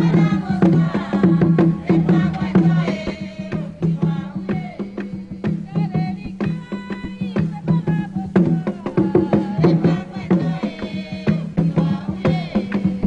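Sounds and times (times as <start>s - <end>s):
hand drums: 0.0s - 13.0s
low drum tone: 0.0s - 13.0s
voices singing a chant: 0.0s - 13.0s.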